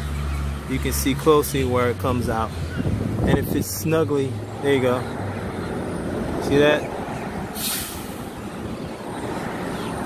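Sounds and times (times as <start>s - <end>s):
short hiss: 7.6s - 8.2s.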